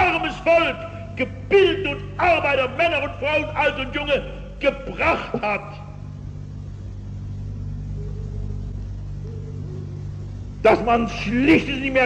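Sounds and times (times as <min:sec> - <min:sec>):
low hum and rumble: 0:00.0 - 0:12.0
faint higher tone: 0:07.2 - 0:10.6.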